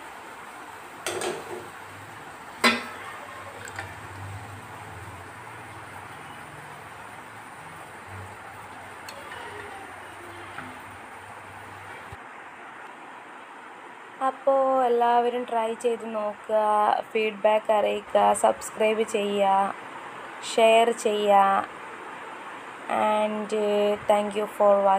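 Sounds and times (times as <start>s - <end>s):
steady hiss: 0.0s - 12.2s
hard clink against steel pot: 2.6s - 3.0s.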